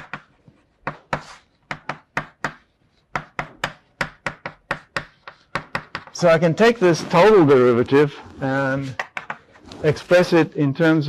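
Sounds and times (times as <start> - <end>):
chalk scraping on blackboard: 0.0 - 3.4, 4.0 - 10.3
chalk tapping on blackboard: 0.0 - 6.2, 8.9 - 9.6.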